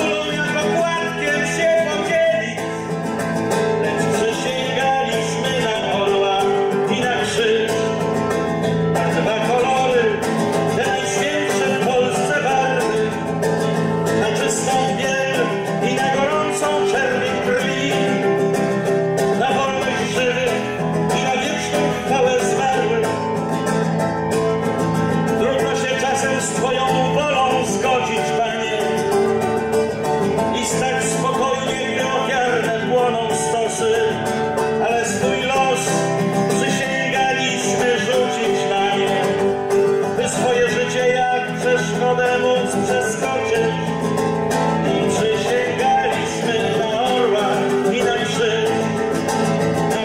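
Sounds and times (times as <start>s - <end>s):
classical guitar playing: 0.0s - 50.0s.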